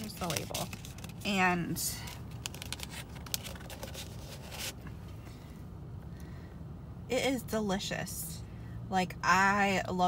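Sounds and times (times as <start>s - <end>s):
paper cup clicks and rustles: 0.0s - 1.3s, 2.0s - 4.8s
low car cabin hum: 0.0s - 10.0s.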